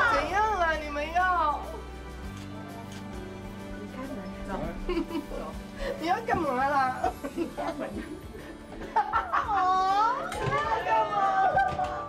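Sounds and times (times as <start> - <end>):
woman laughing exclamation: 9.1 - 10.3.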